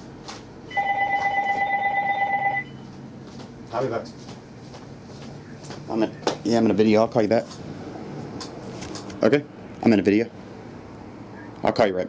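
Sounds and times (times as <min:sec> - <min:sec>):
electronic telephone ring: 0:00.7 - 0:02.8.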